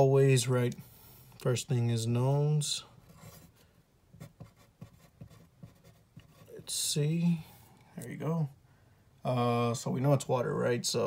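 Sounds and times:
pen scratching on paper: 0:04.2 - 0:06.6.

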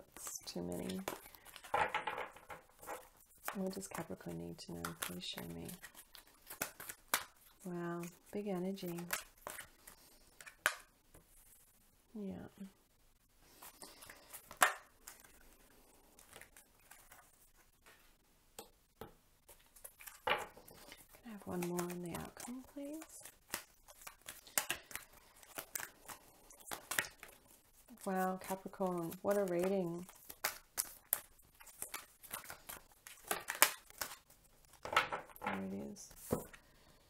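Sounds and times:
cards tapping and clicking: 0:00.7 - 0:07.3, 0:08.8 - 0:10.9, 0:20.0 - 0:27.4, 0:28.5 - 0:36.6.

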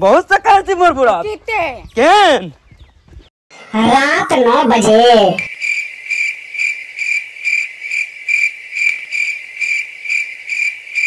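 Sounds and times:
crickets chirping: 0:05.4 - 0:11.0.

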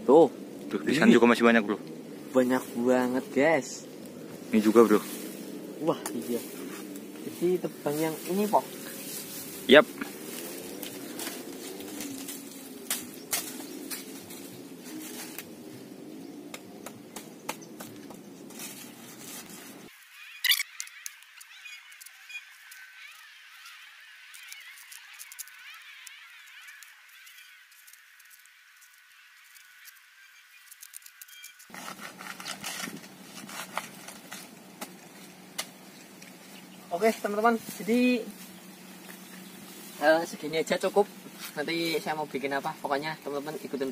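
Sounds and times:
outdoor background: 0:00.0 - 0:43.9
knife cutting plant trunk: 0:30.7 - 0:36.3.

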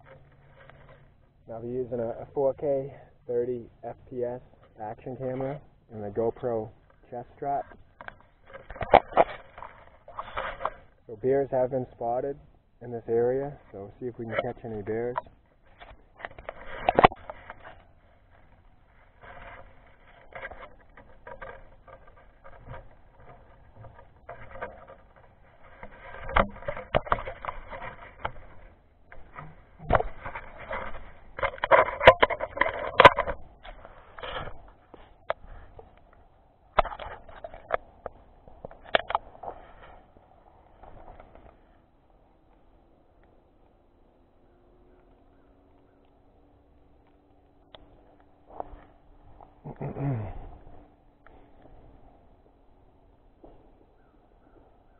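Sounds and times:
gear rubbing against microphone: 0:00.0 - 0:36.0.

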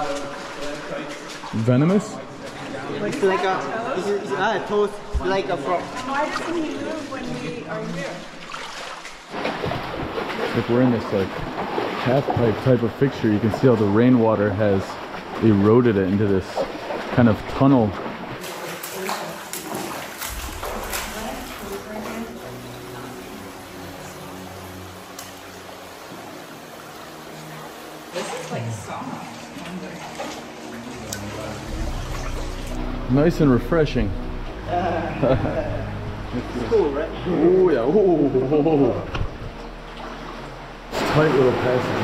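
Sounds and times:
water rushing through cave: 0:00.0 - 0:42.0
low steady hum: 0:20.2 - 0:42.0
person laughing: 0:34.7 - 0:36.0.

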